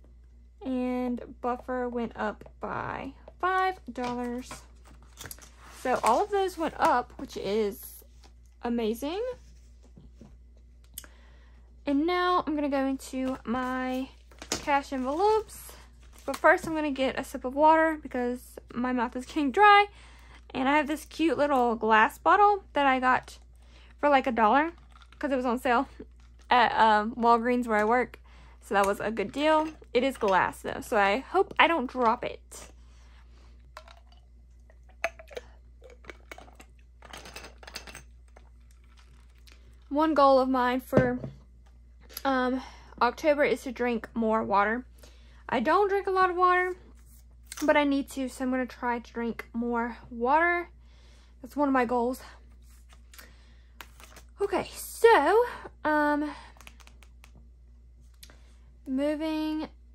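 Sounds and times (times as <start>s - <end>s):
person sipping and swallowing: 33.8s - 36.7s.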